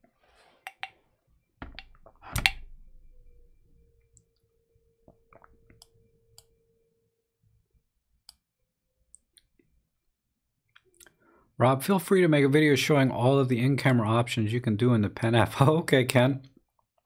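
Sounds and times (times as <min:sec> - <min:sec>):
faint steady tone: 0:00.7 - 0:08.5.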